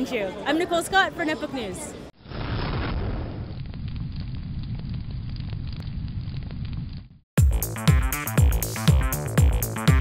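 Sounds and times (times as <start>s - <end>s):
fire crackles: 2.2s - 7.2s
low rumble of flames: 2.2s - 7.2s.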